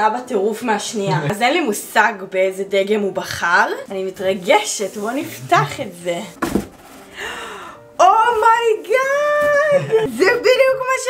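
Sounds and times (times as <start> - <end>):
cardboard box thump and rustle: 6.4 - 7.1
person gasping: 7.1 - 7.9.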